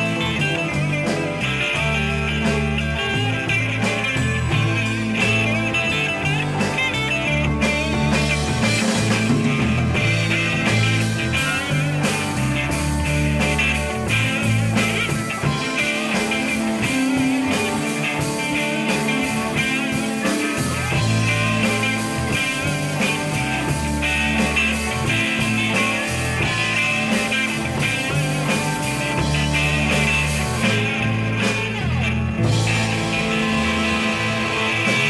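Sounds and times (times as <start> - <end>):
blues-rock band playing: 0.0 - 35.0
harmonica sustained notes: 0.0 - 35.0.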